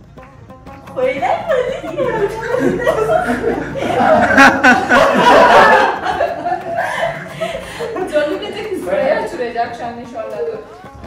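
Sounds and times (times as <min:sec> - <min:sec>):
people talking: 0:01.0 - 0:06.3, 0:07.8 - 0:10.7
people chuckling: 0:01.5 - 0:08.7.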